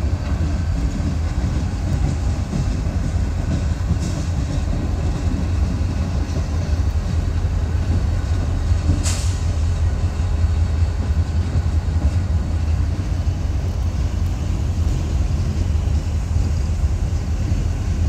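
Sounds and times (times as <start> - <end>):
freight train rumbling: 0.0 - 18.0
short hiss: 9.0 - 9.7.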